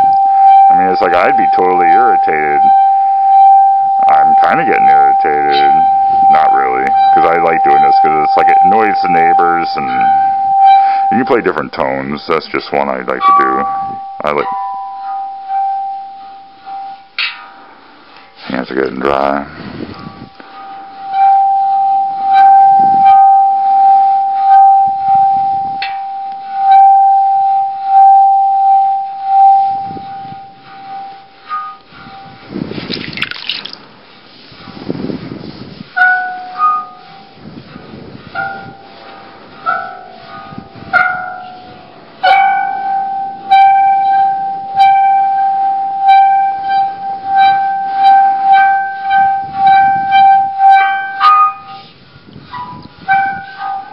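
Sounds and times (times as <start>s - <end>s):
water gong ringing tone: 0.0s - 17.1s, 39.5s - 51.8s.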